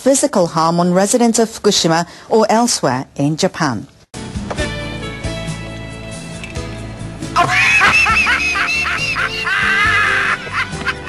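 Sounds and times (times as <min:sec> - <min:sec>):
background music: 0:04.2 - 0:11.0.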